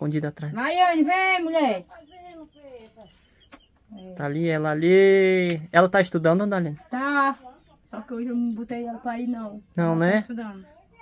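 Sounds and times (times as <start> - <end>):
chickens clucking: 0.6 - 11.0.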